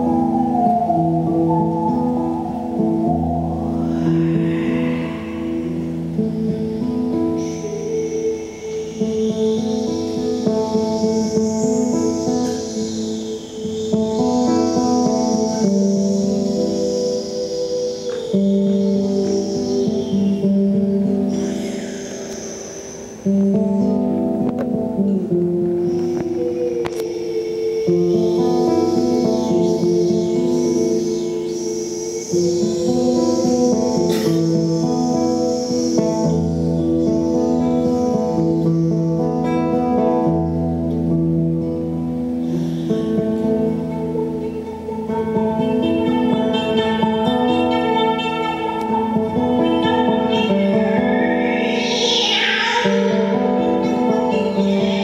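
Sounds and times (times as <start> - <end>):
classical guitar playing: 0.0 - 55.0.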